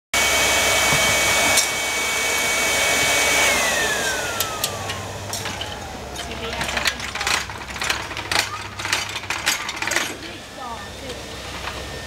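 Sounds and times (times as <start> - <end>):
blower motor whining: 0.2 - 12.0.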